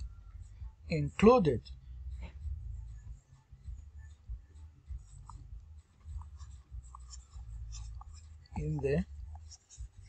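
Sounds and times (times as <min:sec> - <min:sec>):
stylus scratching on a tablet: 0:02.2 - 0:10.0.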